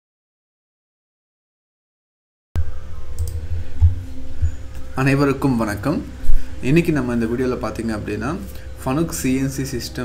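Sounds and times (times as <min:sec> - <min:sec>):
faint steady hum: 0:02.6 - 0:10.0.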